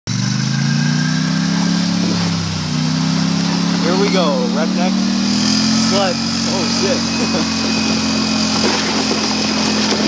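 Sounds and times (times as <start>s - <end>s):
atv engine running: 0.1s - 10.0s.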